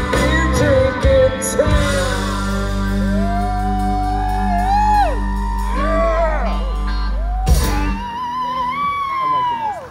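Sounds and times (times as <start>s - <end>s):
country rock band playing: 0.0s - 9.9s
crowd whooping: 2.8s - 9.9s.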